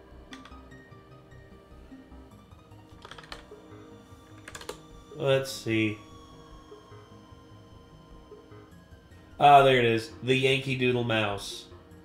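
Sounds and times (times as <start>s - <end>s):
faint background music: 0.0s - 12.0s
keyboard key clicks: 0.3s - 0.6s, 2.9s - 3.5s, 4.3s - 4.8s.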